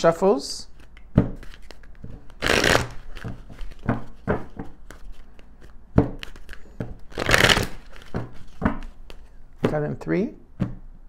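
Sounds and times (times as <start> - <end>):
cards shuffling flutter: 0.8 - 9.3
cards knocking on table: 3.2 - 4.9, 6.0 - 7.0, 8.0 - 8.9.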